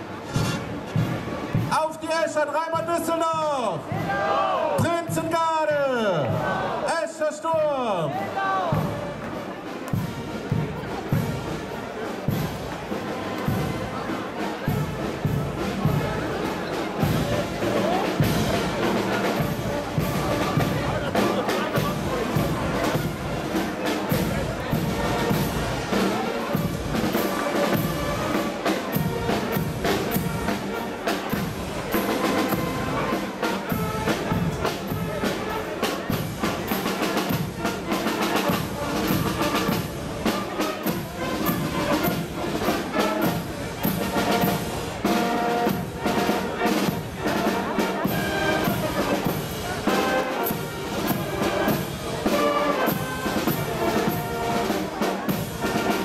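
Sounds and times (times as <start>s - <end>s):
trumpets and trombones: 0.0s - 1.8s, 8.1s - 56.0s
steady drum beat: 0.0s - 2.1s, 2.7s - 56.0s
marching band playing: 0.0s - 56.0s.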